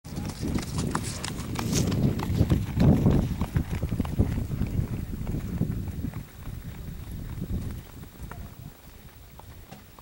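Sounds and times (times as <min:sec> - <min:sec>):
horse hooves trotting on dirt: 0:00.1 - 0:10.0.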